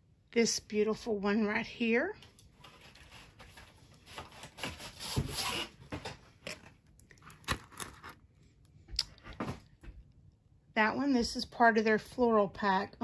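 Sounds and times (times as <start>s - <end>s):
plastic film rustling: 2.5s - 5.7s.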